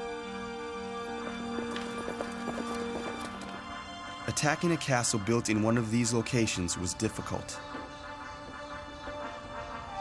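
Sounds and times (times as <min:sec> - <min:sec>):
background music with held notes: 0:00.0 - 0:10.0
horses galloping hoofbeats: 0:01.1 - 0:10.0.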